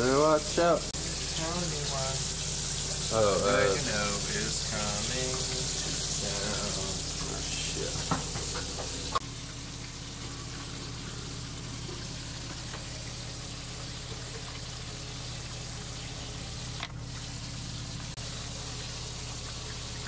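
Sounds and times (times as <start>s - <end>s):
appliance hum with hiss: 0.0s - 20.0s.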